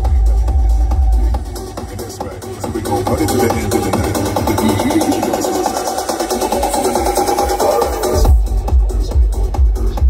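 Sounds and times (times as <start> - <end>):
heavy bass kick beat: 0.0 - 10.0
techno music over sound system: 0.0 - 10.0.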